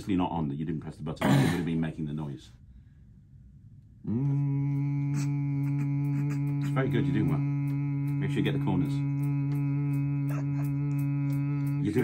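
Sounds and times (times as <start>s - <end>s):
man imitating vacuum cleaner: 4.0s - 12.0s.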